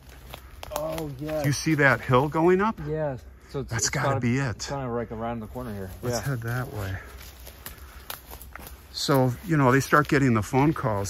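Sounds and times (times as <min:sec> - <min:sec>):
footsteps through leafy undergrowth: 0:00.0 - 0:03.0, 0:05.2 - 0:11.0.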